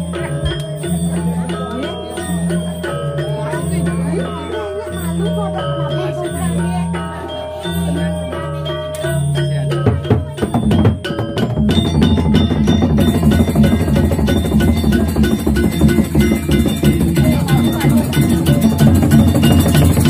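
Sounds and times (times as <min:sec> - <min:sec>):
gamelan playing: 0:00.0 - 0:20.0
metallophones struck in ringing patterns: 0:00.0 - 0:20.0
barrel drum: 0:09.5 - 0:20.0.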